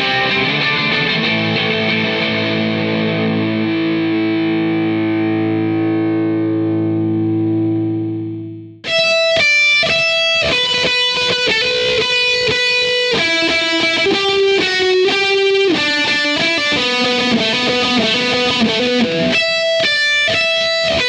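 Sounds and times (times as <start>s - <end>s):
distorted electric guitar chord: 0.0s - 21.0s
distorted guitar riff: 0.0s - 21.0s.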